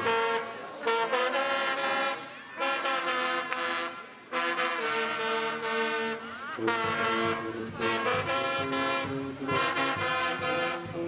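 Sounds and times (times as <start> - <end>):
brass band loud held chords: 0.0 - 11.0
deep bass under horns: 4.6 - 11.0.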